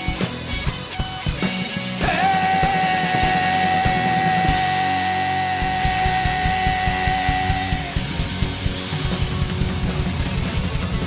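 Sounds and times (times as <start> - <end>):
distorted electric guitars: 0.0 - 11.0
rapid drum hits: 0.0 - 11.0.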